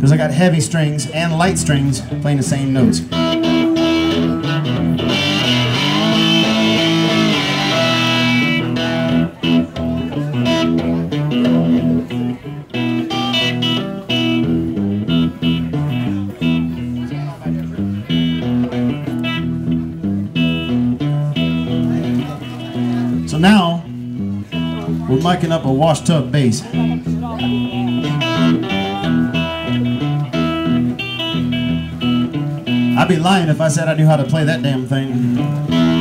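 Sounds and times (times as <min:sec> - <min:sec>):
guitar riff of low notes: 0:00.0 - 0:36.0.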